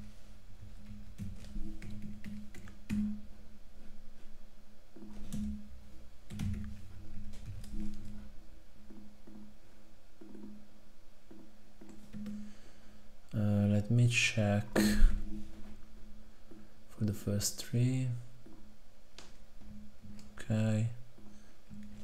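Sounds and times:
soft background music: 0.0 - 22.0
keyboard keystrokes: 0.8 - 3.2, 5.0 - 5.6, 6.3 - 8.2, 11.3 - 12.4.

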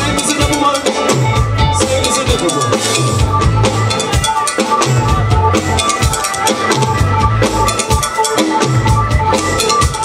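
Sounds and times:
bass: 0.0 - 10.0
drum kit: 0.0 - 10.0
electric guitar: 0.0 - 10.0
keyboard: 0.0 - 10.0.

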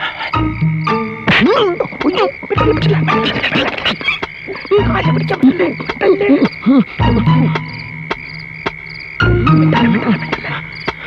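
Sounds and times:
high chirring like crickets: 0.0 - 11.0
film score with bass and percussion: 0.4 - 1.4, 7.0 - 11.0.

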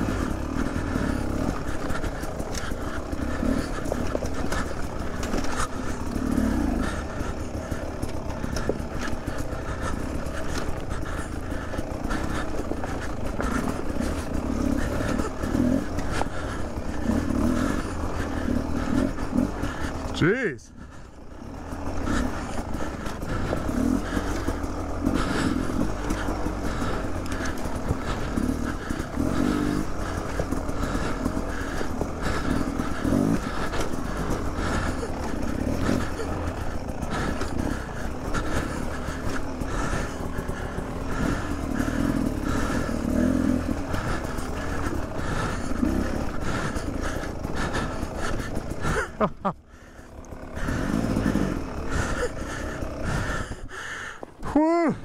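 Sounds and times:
dirt bike engine lugging: 0.0 - 55.0.

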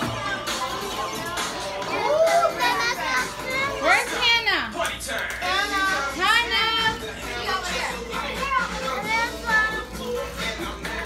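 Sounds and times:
children chattering and calling out: 0.1 - 4.5, 5.4 - 11.0.

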